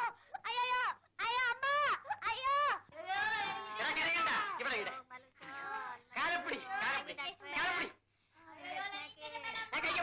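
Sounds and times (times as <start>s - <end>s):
child crying and wailing: 0.0s - 2.8s.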